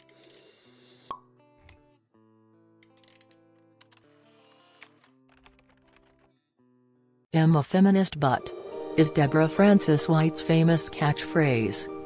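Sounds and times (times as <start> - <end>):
background music: 6.9 - 12.0.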